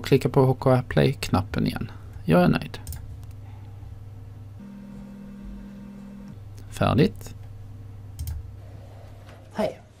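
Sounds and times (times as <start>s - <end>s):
steady low hum: 0.0s - 9.5s
computer mouse clicks: 8.2s - 8.4s.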